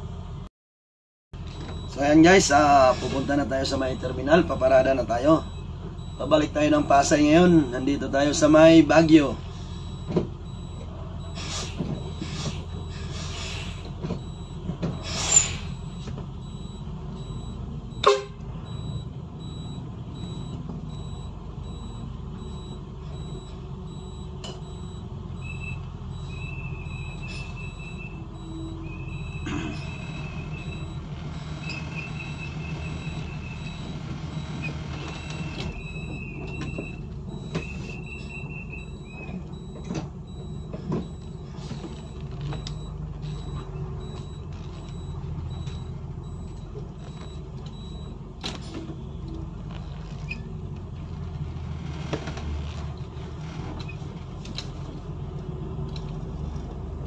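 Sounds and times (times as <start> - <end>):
bus engine running at low revs: 0.0 - 0.5, 1.4 - 57.0.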